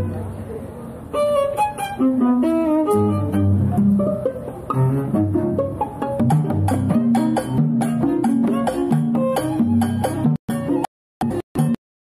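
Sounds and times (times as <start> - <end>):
string ensemble playing: 1.1 - 9.3.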